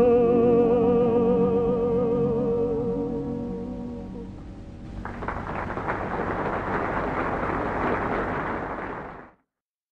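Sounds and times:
audience applause: 0:04.9 - 0:09.4.

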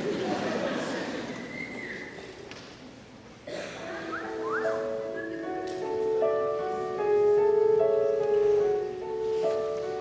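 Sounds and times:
audience noise: 0:00.0 - 0:10.0
soft digital piano chords: 0:03.5 - 0:10.0
whistle: 0:04.1 - 0:05.4.

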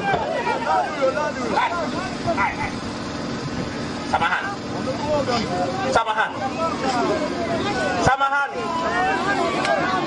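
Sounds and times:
steady low hum: 0:00.0 - 0:10.0
man speaking over public address: 0:00.1 - 0:02.8, 0:04.1 - 0:09.6.

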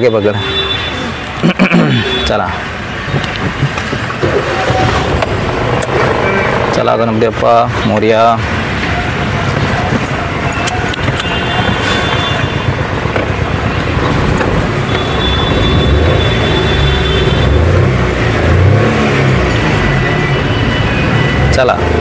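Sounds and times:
street traffic noise: 0:00.0 - 0:22.0
car engine idling: 0:02.7 - 0:20.7.

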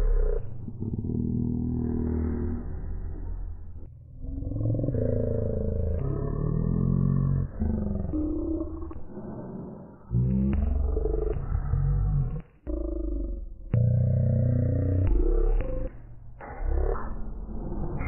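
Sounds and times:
deep distorted growling voices: 0:00.0 - 0:18.0.

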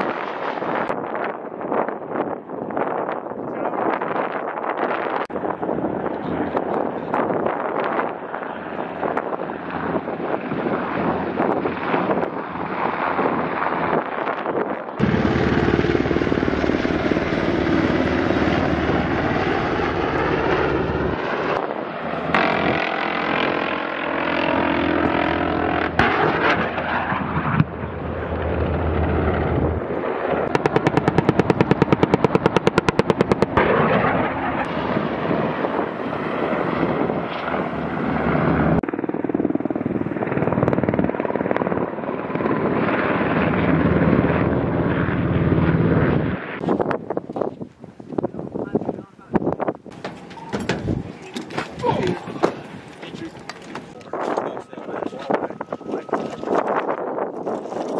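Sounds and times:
helicopter flying overhead: 0:00.0 - 0:57.9.

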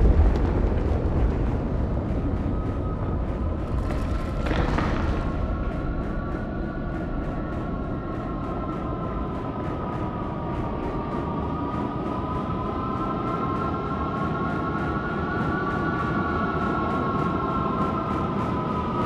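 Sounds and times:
low rumbling drone: 0:00.0 - 0:19.0.

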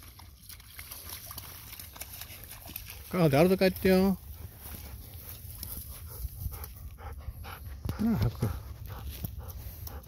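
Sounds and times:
dog steps in mud and grass: 0:00.0 - 0:06.8.

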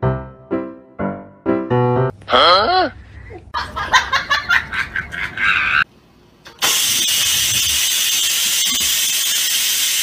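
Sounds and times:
rice cooker steam hissing: 0:06.6 - 0:10.0.

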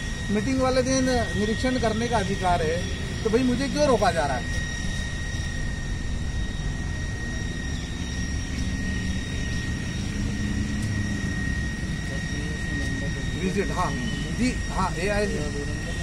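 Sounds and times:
jet engine running: 0:00.0 - 0:16.0.

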